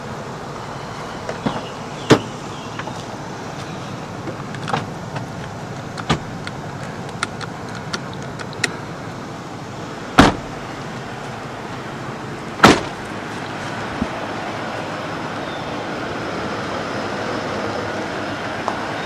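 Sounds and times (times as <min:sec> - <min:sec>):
car door thud: 0:01.3 - 0:03.0, 0:06.0 - 0:06.3, 0:10.2 - 0:10.6, 0:12.6 - 0:13.0.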